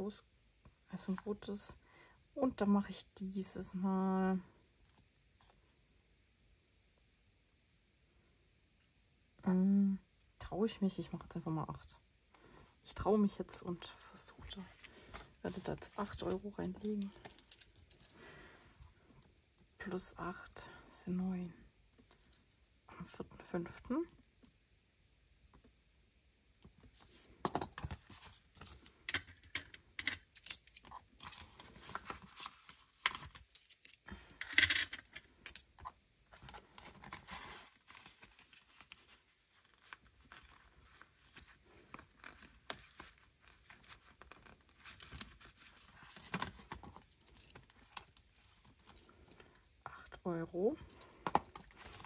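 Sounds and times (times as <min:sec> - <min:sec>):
coins clinking: 0:30.0 - 0:30.9, 0:33.3 - 0:35.6.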